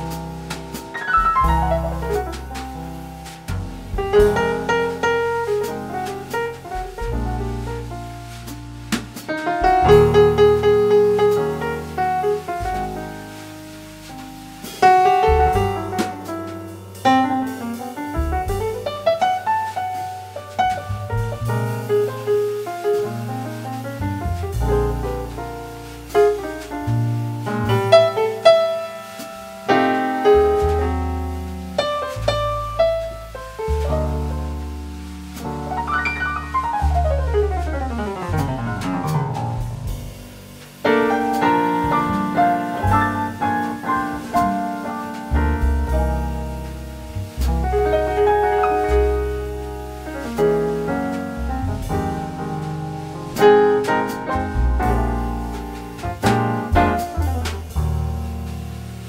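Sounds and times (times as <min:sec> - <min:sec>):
jazz piano and bass: 0:00.0 - 0:59.0.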